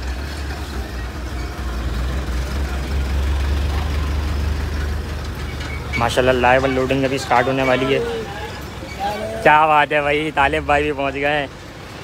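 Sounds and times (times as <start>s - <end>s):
truck diesel engine rumbling: 0.0s - 12.0s.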